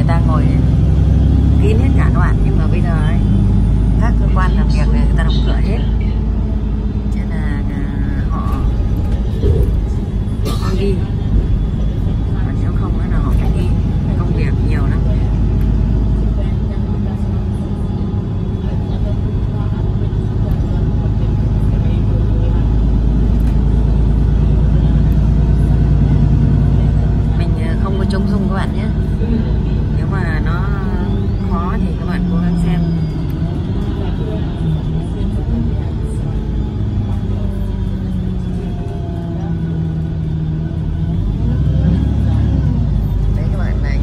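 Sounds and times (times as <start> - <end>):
bus engine drone: 0.0 - 44.0.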